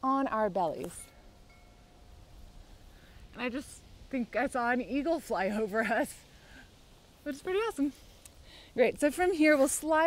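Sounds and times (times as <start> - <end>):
faint chime ringing: 1.0 - 2.2.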